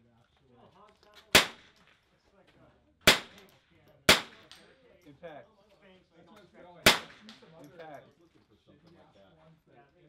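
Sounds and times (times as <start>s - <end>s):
rifle shots: 1.3s - 1.9s, 3.1s - 3.5s, 4.1s - 4.6s, 6.8s - 7.4s.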